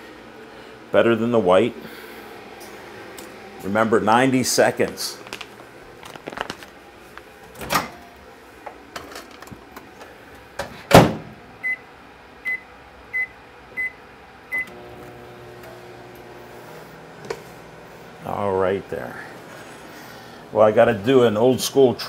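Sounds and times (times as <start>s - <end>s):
microwave oven humming: 0.0s - 22.0s
microwave door shutting: 7.5s - 8.1s, 10.6s - 11.4s.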